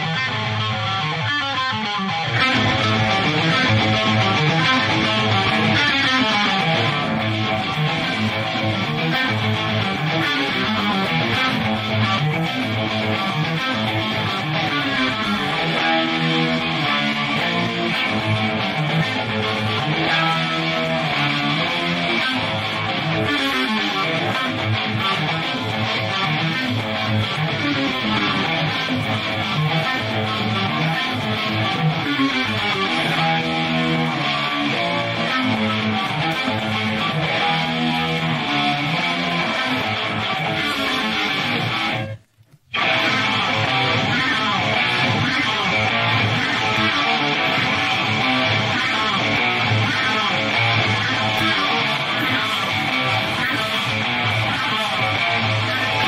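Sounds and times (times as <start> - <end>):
distorted electric guitar riffs: 0.0 - 56.0.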